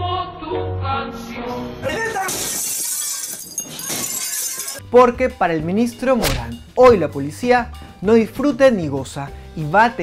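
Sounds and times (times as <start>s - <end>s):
glass shattering: 1.9s - 4.8s.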